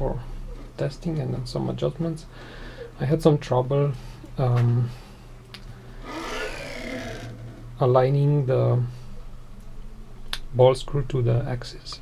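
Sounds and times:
table sliding on rails whirring: 6.0s - 7.6s.

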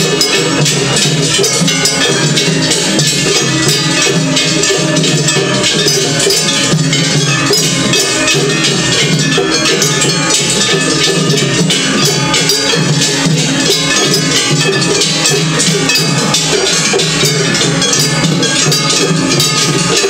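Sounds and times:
brass hand gongs clanging: 0.0s - 20.0s
drums: 0.0s - 20.0s.

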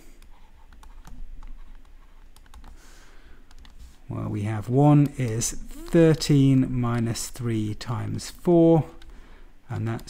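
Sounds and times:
stylus tapping tablet screen: 0.2s - 4.0s, 4.9s - 8.2s.

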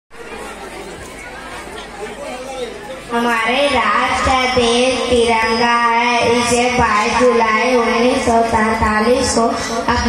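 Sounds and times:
murmur of voices: 0.1s - 10.0s.

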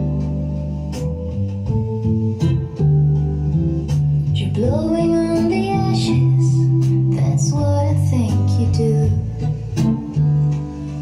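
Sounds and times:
held bass notes: 0.0s - 11.0s.

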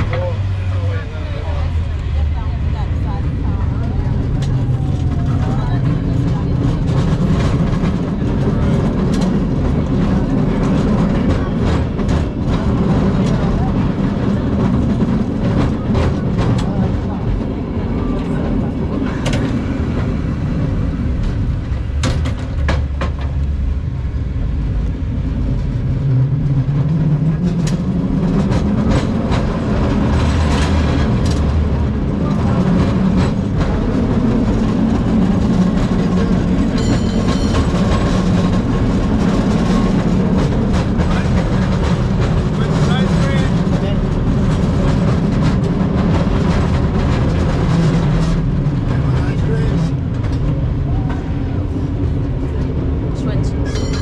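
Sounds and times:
cable car rumbling: 0.0s - 54.0s.

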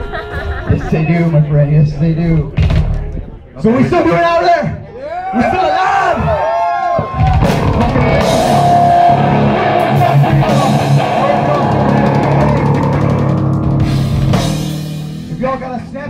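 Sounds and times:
drum kit: 2.5s - 3.3s, 7.0s - 16.0s
bass guitar: 7.0s - 16.0s
electric guitar: 7.0s - 16.0s.

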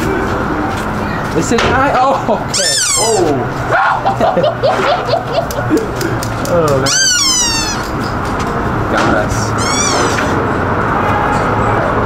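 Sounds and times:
voices: 0.0s - 12.0s
high-pitched shriek: 2.6s - 3.3s, 6.8s - 8.0s, 9.6s - 10.4s.

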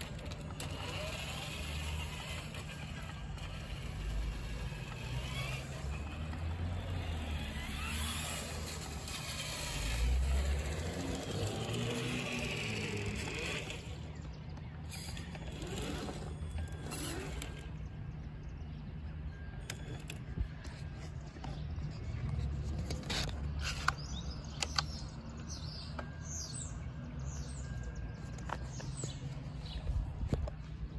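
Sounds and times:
toy car electric motor whining: 0.0s - 18.4s, 19.5s - 21.2s, 22.7s - 25.0s.

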